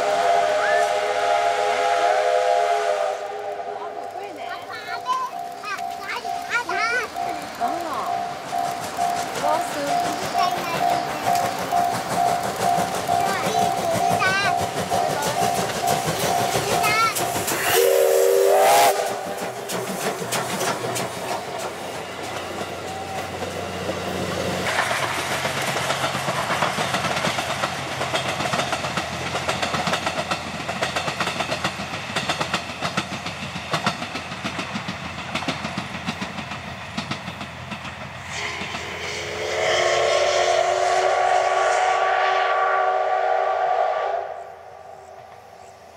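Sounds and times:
steam whistle: 0.0s - 4.1s, 17.6s - 19.4s, 38.3s - 45.1s
steam locomotive running past: 0.0s - 45.9s
level-crossing bell ringing: 5.1s - 17.1s.

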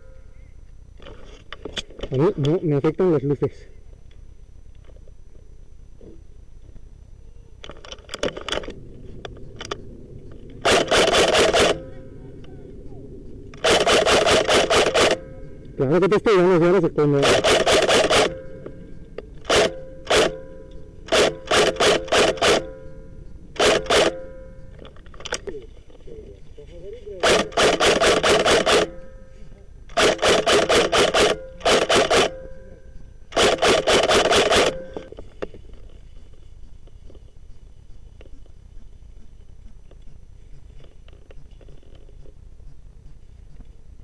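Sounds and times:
airsoft rifle firing: 10.4s - 12.5s, 13.5s - 15.4s, 17.1s - 18.8s, 19.4s - 22.9s, 23.6s - 25.4s, 27.2s - 29.2s, 29.9s - 32.6s, 33.3s - 35.1s.

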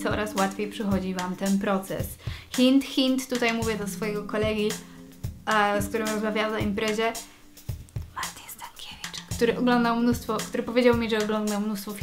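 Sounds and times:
woman whispering: 8.2s - 9.4s.

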